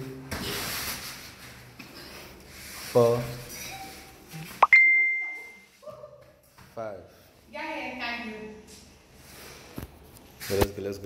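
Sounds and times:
bell ding: 4.6 - 5.6.

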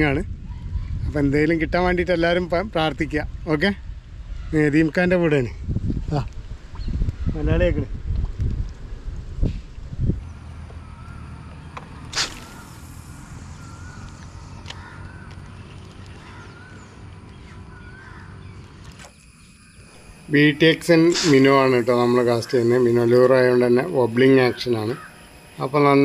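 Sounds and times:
birds calling: 6.5 - 7.7, 10.2 - 26.0
crows cawing: 10.8 - 11.6, 13.6 - 18.6, 24.4 - 25.6
short sharp sound: 12.1 - 12.9.

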